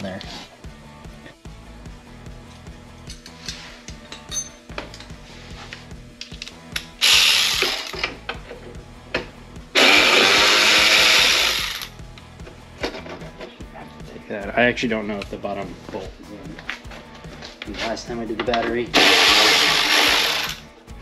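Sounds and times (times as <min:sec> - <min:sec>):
fast ratcheting: 0:09.8 - 0:11.9, 0:19.0 - 0:20.6.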